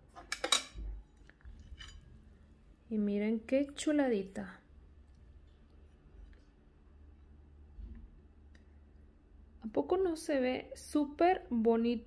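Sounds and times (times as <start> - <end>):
knife clinking on glass plate: 1.6 - 2.0.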